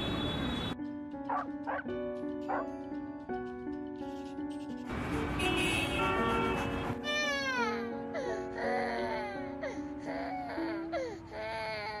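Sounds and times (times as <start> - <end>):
music with sustained notes: 0.8 - 11.9.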